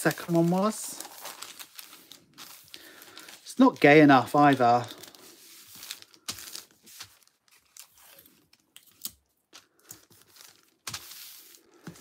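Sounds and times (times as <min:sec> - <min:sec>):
packaging wrapper crinkling: 0:00.0 - 0:12.0.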